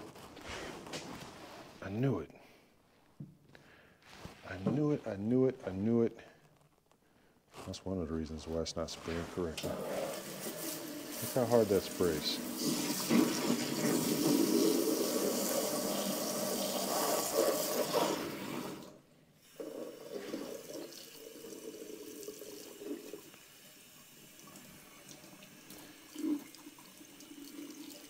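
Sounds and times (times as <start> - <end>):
weak water stream running: 9.0 - 28.0.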